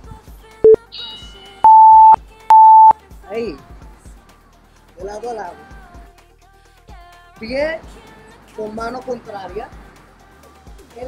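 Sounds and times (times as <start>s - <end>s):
long high timer beeps: 0.7s - 2.9s.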